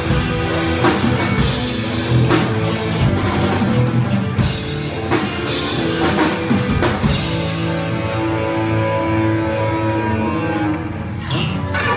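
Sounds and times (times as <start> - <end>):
electric guitars and bass chord: 0.0 - 11.9.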